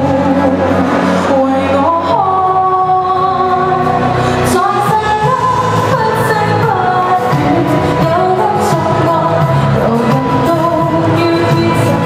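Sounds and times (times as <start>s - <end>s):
accompanying music: 0.0s - 12.0s
woman singing into microphone: 0.0s - 12.0s.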